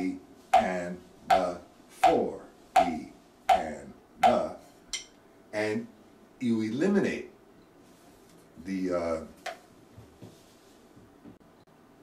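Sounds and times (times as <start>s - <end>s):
person counting syllables: 0.0s - 4.7s
drumsticks striking practice pad: 0.0s - 5.2s.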